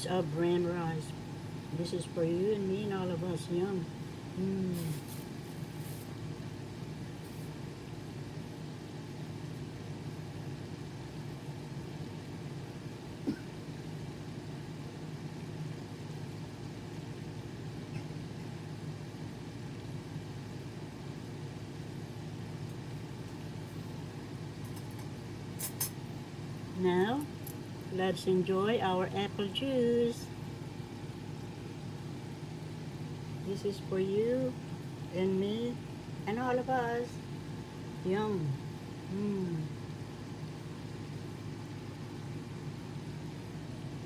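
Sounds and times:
steady low machinery hum: 0.0 - 44.0.

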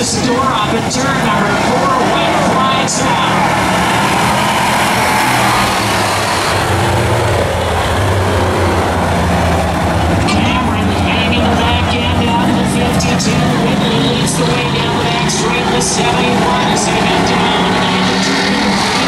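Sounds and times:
stock car engines running: 0.0 - 19.0.

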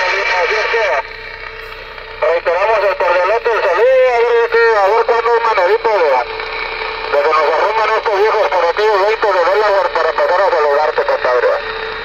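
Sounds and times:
voice over radio speaker: 0.0 - 1.1, 2.2 - 11.7
radio static hiss: 0.0 - 11.7.

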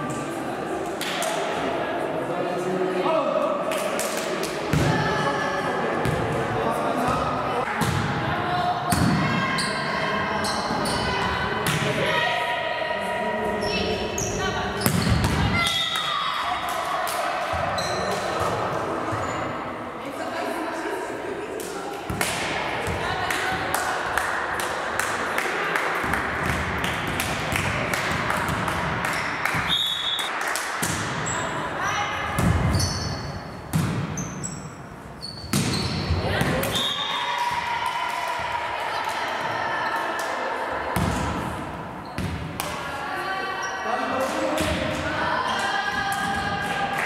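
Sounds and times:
girls' voices echoing in hall: 0.0 - 29.7, 30.3 - 32.8, 36.2 - 47.0
background chatter: 16.2 - 26.4
hand claps echoing: 21.6 - 31.1, 46.1 - 47.0.

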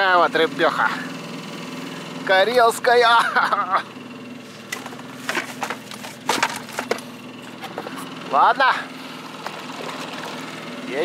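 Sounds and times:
outboard motor idling: 0.0 - 11.0
fish knocking in plastic bucket: 4.8 - 7.1.

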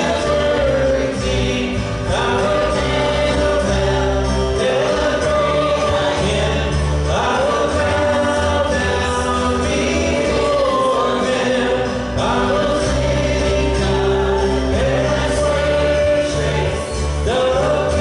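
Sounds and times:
congregation singing: 0.0 - 18.0
steady bass: 0.0 - 18.0.

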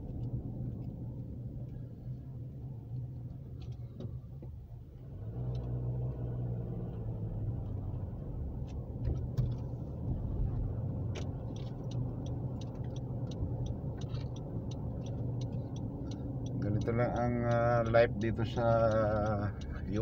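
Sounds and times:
light ticks: 0.0 - 4.6, 5.4 - 20.0
car engine and tyre rumble: 0.0 - 20.0.

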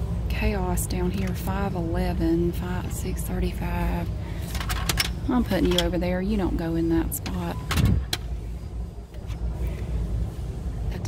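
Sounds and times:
low rumble of shop: 0.0 - 11.0.

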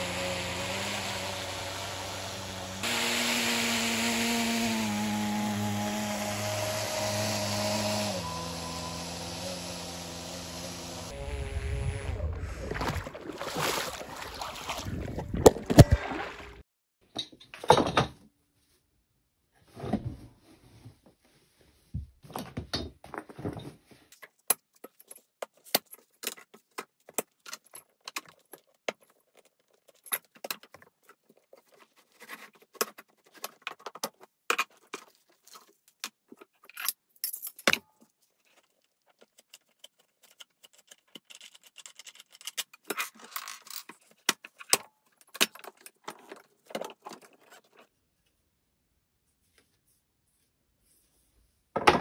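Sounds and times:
plastic rustling and scraping: 23.2 - 36.8, 38.0 - 48.1
plastic and metal parts clicking: 38.5 - 47.8.

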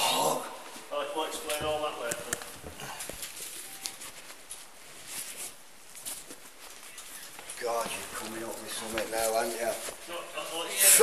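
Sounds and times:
faint rustling: 0.6 - 11.0
man speaking: 7.6 - 11.0.

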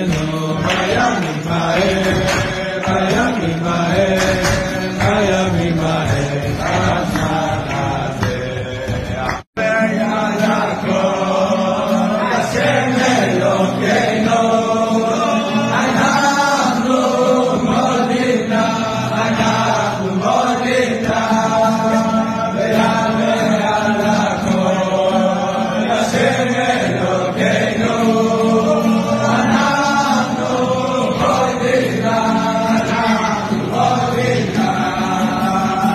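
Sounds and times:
men singing in unison: 0.0 - 35.9.

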